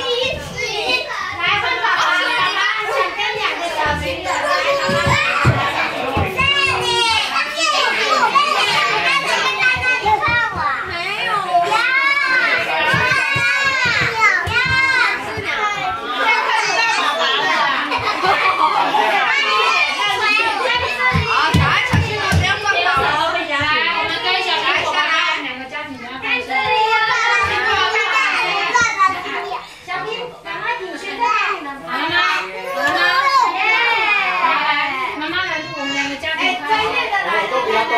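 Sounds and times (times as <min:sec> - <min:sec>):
children shouting and squealing: 0:00.0 - 0:30.4, 0:31.1 - 0:37.9.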